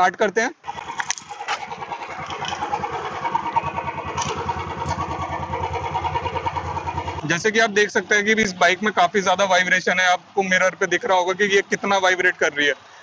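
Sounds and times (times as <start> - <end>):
motorcycle kick-start: 0.6 - 7.3
motorcycle engine idling: 0.6 - 11.0.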